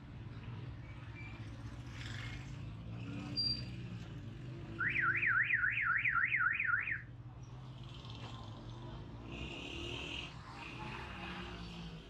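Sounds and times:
street traffic hum: 0:00.0 - 0:12.0
car alarm siren warbling: 0:04.8 - 0:07.1.

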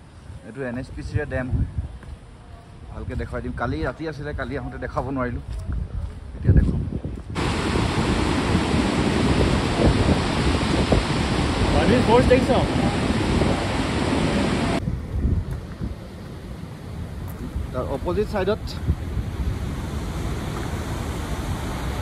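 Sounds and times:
water pouring from spillway: 0:07.4 - 0:14.8.

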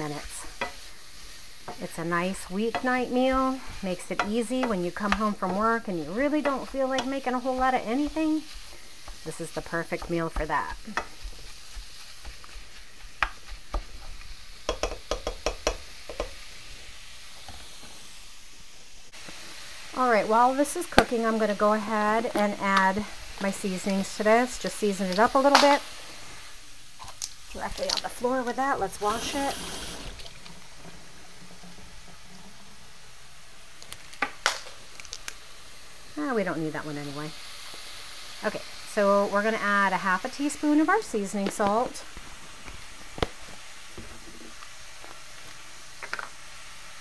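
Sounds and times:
meat sizzling in a frying pan: 0:00.0 - 0:47.0
meat chopper tapping a pan: 0:14.6 - 0:16.4.

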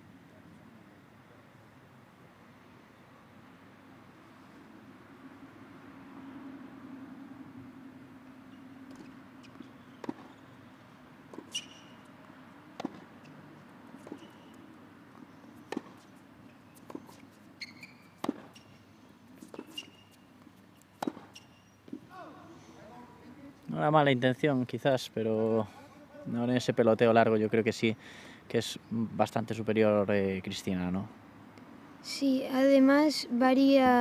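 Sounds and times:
ball bouncing on hard court: 0:08.9 - 0:10.4, 0:12.8 - 0:13.1, 0:14.0 - 0:14.6, 0:15.7 - 0:16.1, 0:16.8 - 0:18.6, 0:21.0 - 0:22.0
tennis ball hits: 0:08.9 - 0:10.5, 0:11.3 - 0:12.1, 0:12.7 - 0:18.8, 0:21.0 - 0:22.1
short high squeaks: 0:11.5 - 0:12.1, 0:14.1 - 0:14.6, 0:16.7 - 0:18.8, 0:19.4 - 0:20.3, 0:21.1 - 0:21.8.

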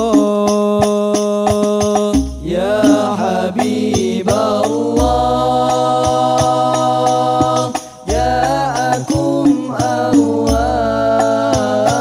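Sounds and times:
male vocal group chanting: 0:00.0 - 0:12.0.

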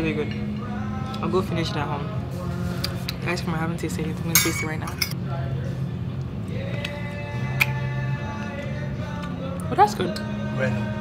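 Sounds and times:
background music with held notes: 0:00.0 - 0:11.0
murmur of voices: 0:00.0 - 0:11.0.

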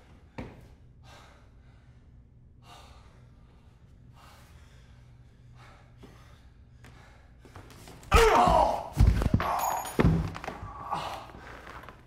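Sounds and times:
man breathing heavily: 0:00.0 - 0:08.1.

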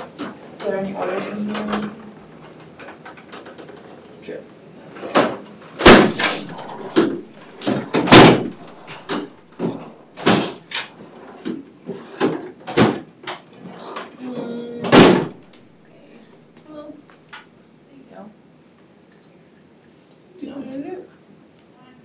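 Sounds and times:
drawers opening and shutting: 0:04.9 - 0:15.8.

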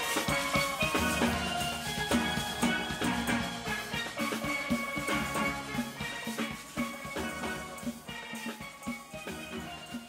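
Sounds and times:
steel band playing: 0:00.0 - 0:10.0.

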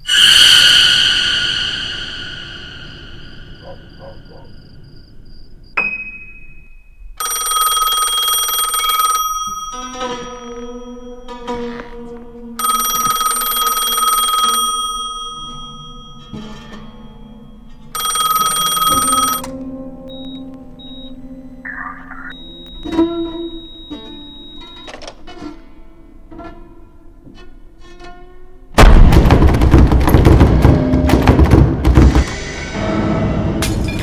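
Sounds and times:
telephone bell ringing: 0:07.2 - 0:11.0, 0:12.6 - 0:16.4, 0:18.0 - 0:19.5, 0:21.7 - 0:25.0
music playing: 0:19.4 - 0:26.2.

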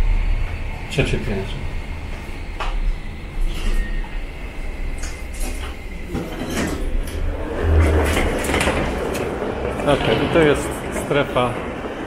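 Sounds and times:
hall ambience: 0:00.0 - 0:12.0
lift humming: 0:00.0 - 0:12.0
lift doors opening: 0:01.5 - 0:12.0.

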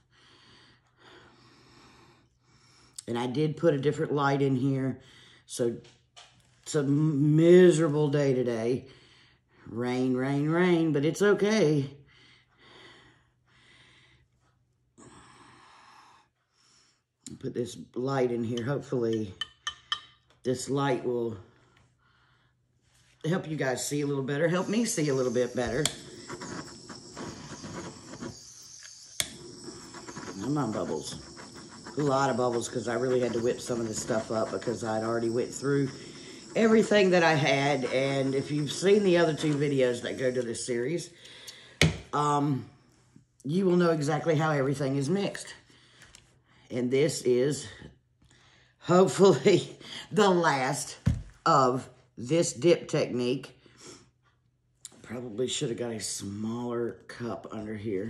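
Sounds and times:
high-pitched whine: 0:23.3 - 0:41.0.

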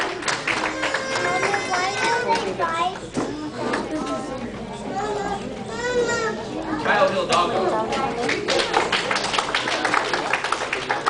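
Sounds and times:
children chattering and laughing: 0:00.0 - 0:08.9
high-pitched child's voice: 0:00.7 - 0:03.8, 0:04.9 - 0:06.8.

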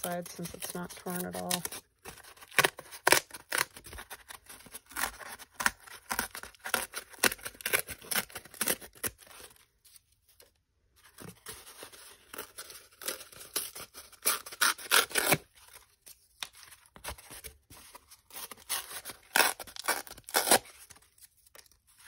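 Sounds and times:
cardboard being torn: 0:00.0 - 0:09.6, 0:11.2 - 0:22.0.

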